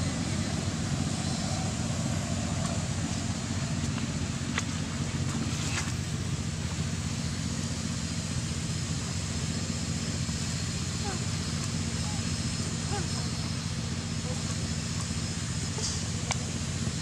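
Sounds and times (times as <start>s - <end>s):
low droning hum: 0.0s - 17.0s.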